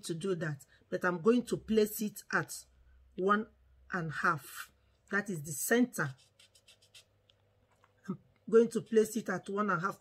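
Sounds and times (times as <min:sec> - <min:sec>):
felt-tip marker scratching on paper: 0:05.9 - 0:07.2.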